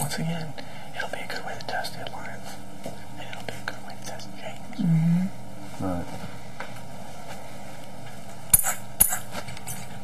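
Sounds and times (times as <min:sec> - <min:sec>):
man whispering: 0:00.0 - 0:02.6, 0:03.2 - 0:04.9.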